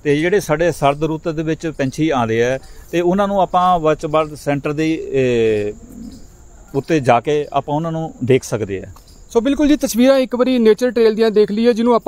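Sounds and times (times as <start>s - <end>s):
faint low bird call: 3.6s - 8.2s.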